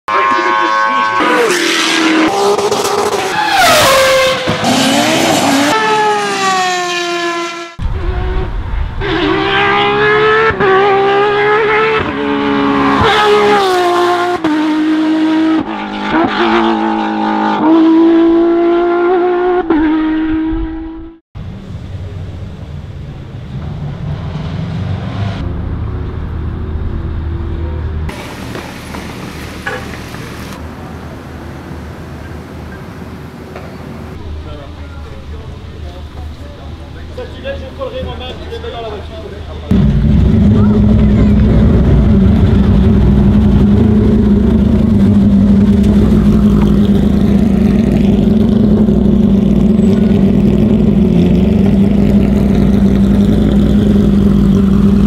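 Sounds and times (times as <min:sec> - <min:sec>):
rally car engines revving hard: 0:00.1 - 0:21.2, 0:39.7 - 0:55.0.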